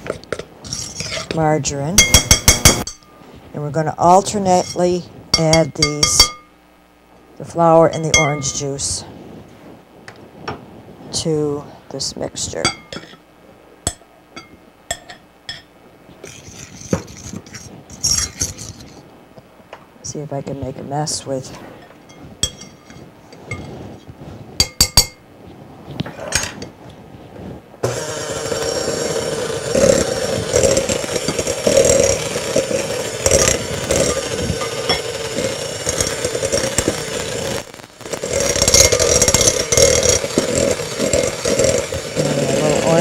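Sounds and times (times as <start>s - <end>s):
hand mixer running: 27.8s - 43.0s.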